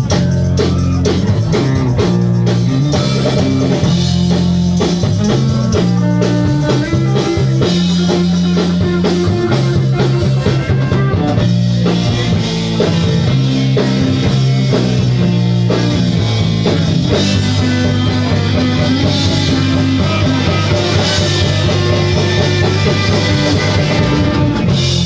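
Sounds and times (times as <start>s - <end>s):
rock band playing live: 0.0s - 25.0s.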